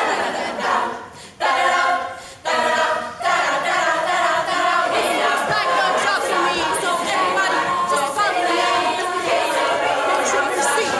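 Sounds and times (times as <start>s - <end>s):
women's choir singing a cappella: 0.0s - 10.9s.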